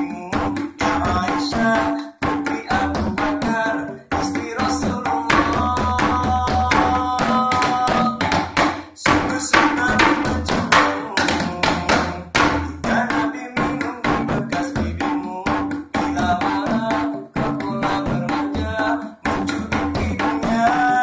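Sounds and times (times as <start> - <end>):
devotional song: 0.0 - 21.0
hand drums slapping: 0.0 - 21.0.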